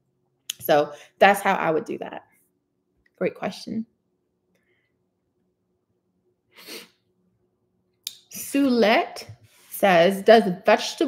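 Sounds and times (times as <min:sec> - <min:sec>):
short sharp breath: 0:06.6 - 0:07.0.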